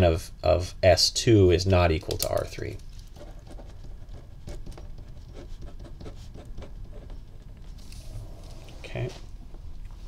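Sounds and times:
pen scratching on paper: 0:03.2 - 0:07.5.

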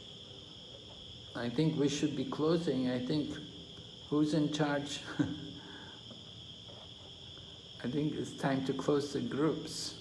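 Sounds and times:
crickets droning: 0:00.0 - 0:10.0
faint hiss: 0:00.0 - 0:10.0.

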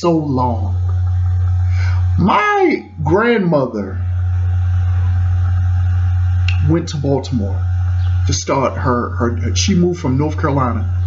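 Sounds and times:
deep steady drone: 0:00.0 - 0:11.0.

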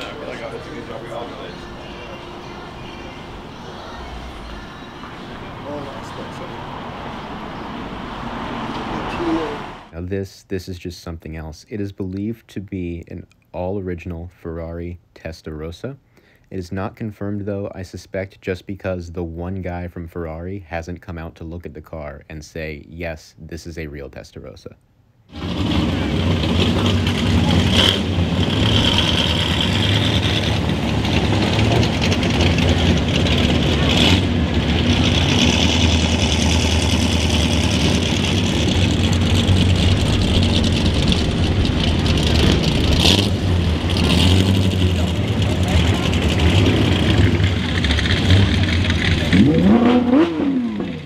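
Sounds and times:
people talking: 0:00.0 - 0:06.9, 0:08.8 - 0:24.8, 0:25.8 - 0:26.3, 0:27.2 - 0:27.8, 0:44.8 - 0:47.3, 0:49.0 - 0:50.2
car engine idling: 0:00.0 - 0:09.9, 0:25.3 - 0:51.0.

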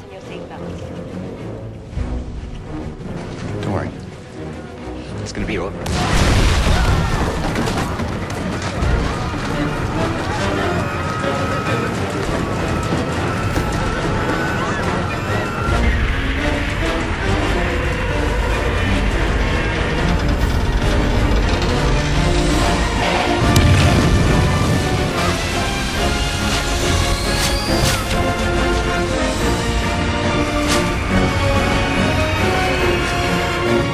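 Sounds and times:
dramatic music: 0:00.0 - 0:33.9
booms and crashes: 0:05.8 - 0:11.1, 0:20.2 - 0:31.9
loud rumbling: 0:05.9 - 0:33.9.

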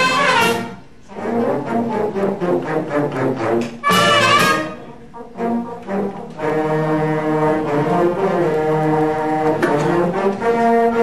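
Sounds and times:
brass band music: 0:00.0 - 0:11.0.

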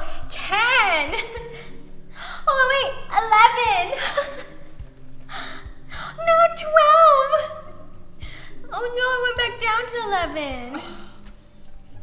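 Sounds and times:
woman speaking: 0:00.0 - 0:01.5, 0:02.4 - 0:04.4, 0:06.2 - 0:07.6, 0:08.7 - 0:10.8.

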